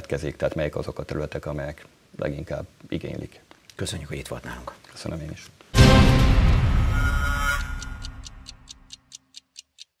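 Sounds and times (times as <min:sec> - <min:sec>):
television theme music: 0:05.8 - 0:08.9
clock-like ticking: 0:07.4 - 0:10.0.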